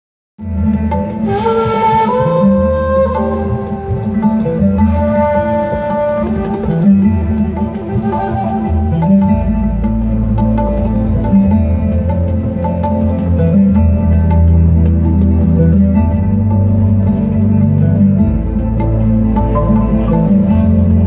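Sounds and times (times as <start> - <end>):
live band playing: 0.4 - 21.0.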